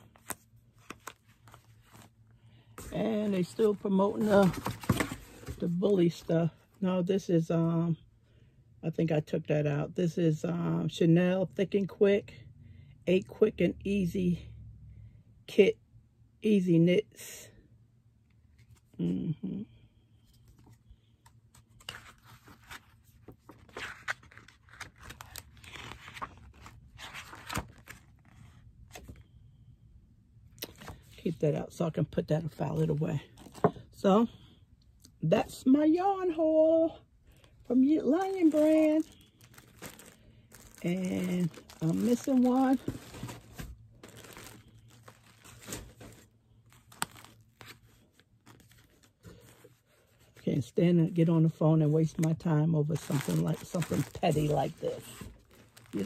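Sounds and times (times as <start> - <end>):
paper and packaging crinkling: 0.0 - 6.3, 21.5 - 29.2, 37.3 - 50.4, 52.0 - 56.0
plastic bag crinkling: 37.3 - 49.6, 52.9 - 56.0.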